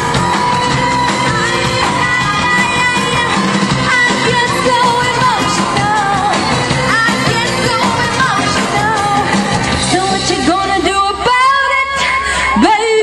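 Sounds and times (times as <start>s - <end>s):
live band music: 0.0s - 11.8s.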